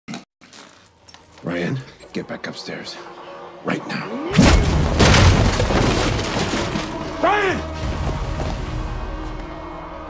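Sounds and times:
heavy crash with deep boom: 4.4 - 7.0
debris clattering: 4.4 - 7.2.

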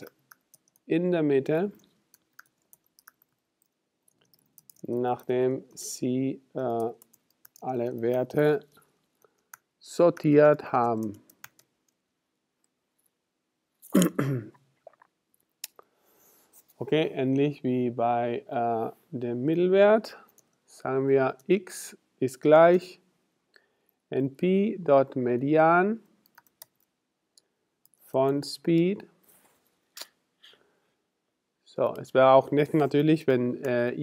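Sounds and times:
man clearing his throat: 13.9 - 14.6.

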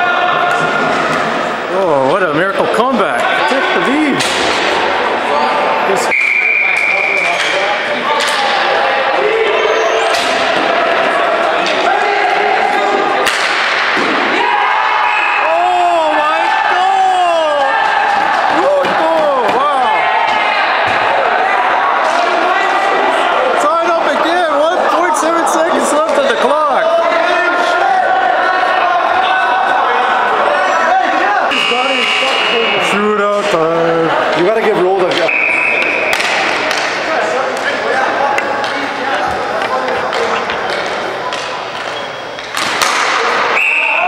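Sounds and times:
players shouting in a hall: 0.0 - 1.7, 3.0 - 33.2, 34.0 - 44.0.

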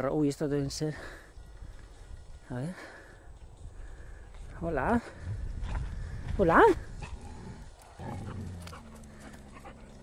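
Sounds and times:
dog growling: 7.0 - 10.0.

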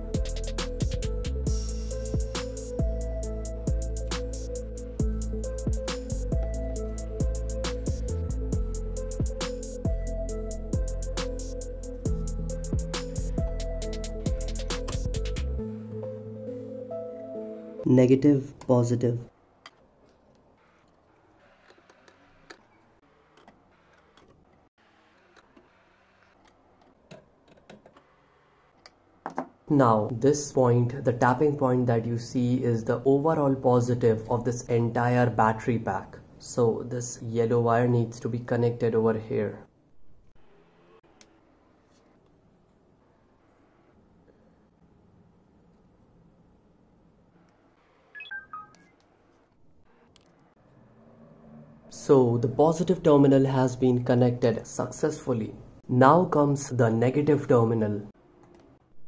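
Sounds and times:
short electronic beeps: 48.2 - 49.0.

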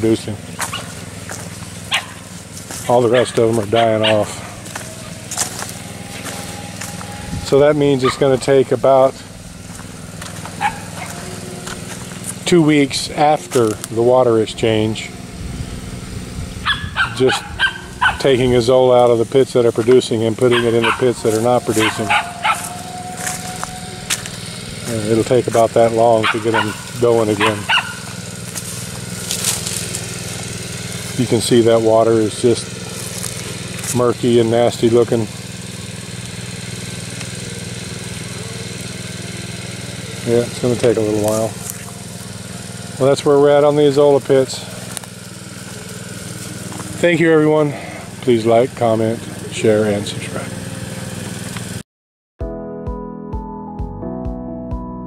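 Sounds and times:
water pump humming: 0.0 - 51.8
dog barking: 1.9 - 2.2, 3.1 - 4.8, 8.0 - 8.2, 10.6 - 11.4, 16.6 - 18.3, 20.5 - 24.2, 26.2 - 28.1.

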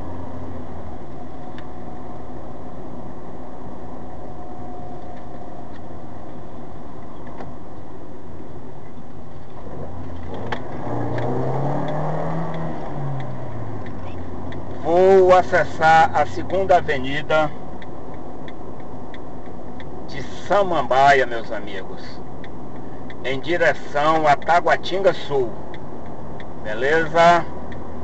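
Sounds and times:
road noise inside car: 0.0 - 28.0
engine revving: 9.6 - 17.0.

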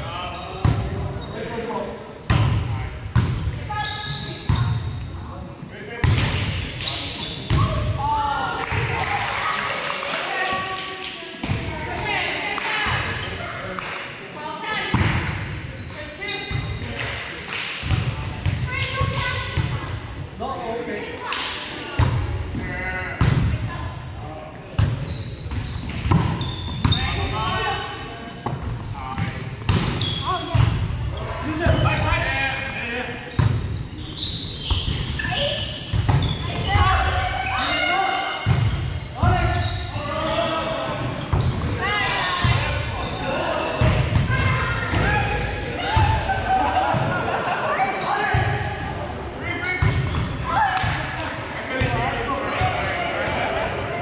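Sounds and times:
players calling and chatting: 0.0 - 54.0.

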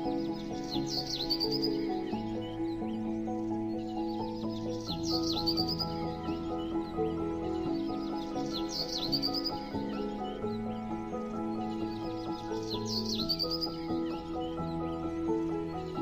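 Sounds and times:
high chirping trill: 0.0 - 16.0
instrumental music of held chords: 0.0 - 16.0.

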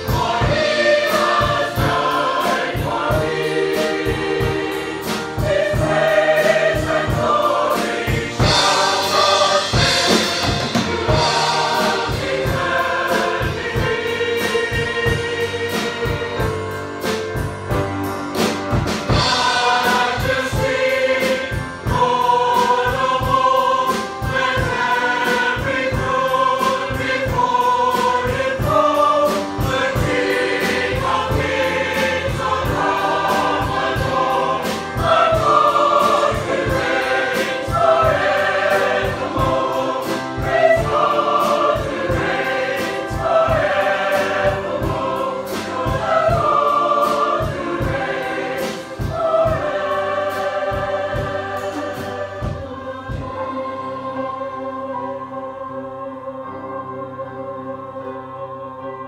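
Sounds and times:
drum kit beat: 0.0 - 53.8
choir singing a hymn: 0.0 - 59.0
keyboard: 0.0 - 59.0.

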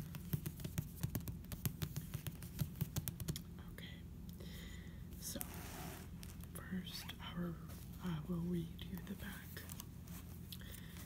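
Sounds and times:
book tapping and rustling: 0.0 - 3.4
woman whispering: 3.5 - 4.1, 6.5 - 9.8.

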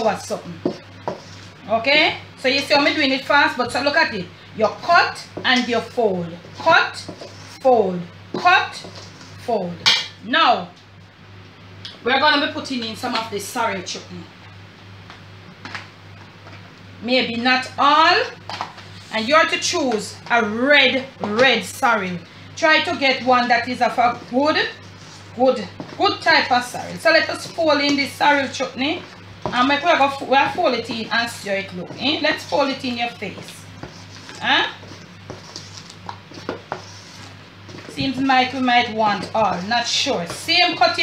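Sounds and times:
steady low hum: 0.0 - 41.0
spoon scraping batter in bowl: 0.4 - 1.6, 4.7 - 10.0, 22.8 - 41.0.

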